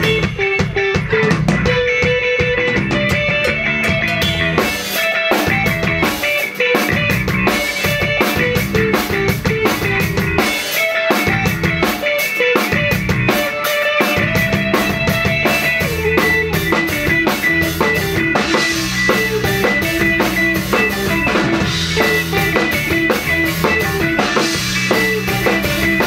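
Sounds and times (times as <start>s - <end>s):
drum kit: 0.0s - 26.0s
electric guitars: 0.0s - 26.0s.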